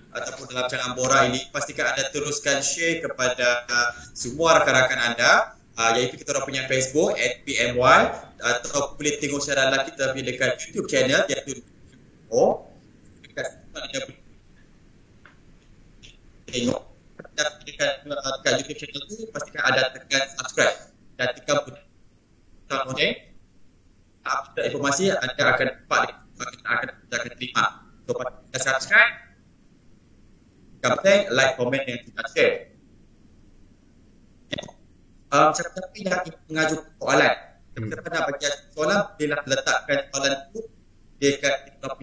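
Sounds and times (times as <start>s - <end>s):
man talking over video call: 0.0s - 11.6s, 12.3s - 14.2s, 16.5s - 21.9s, 22.7s - 23.3s, 24.2s - 29.3s, 30.8s - 32.8s, 35.3s - 42.0s
faint line hiss: 0.0s - 42.0s
man's short vocal sound: 37.8s - 38.0s.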